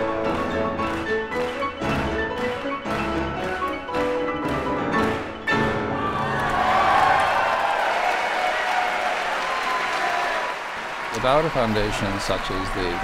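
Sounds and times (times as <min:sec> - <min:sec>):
audience applause: 0:00.0 - 0:13.0.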